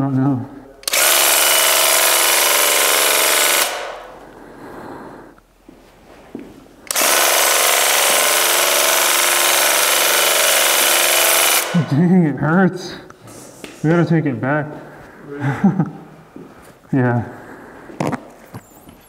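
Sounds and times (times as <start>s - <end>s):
paint sprayer pump buzzing: 0.8s - 4.2s, 6.9s - 11.9s.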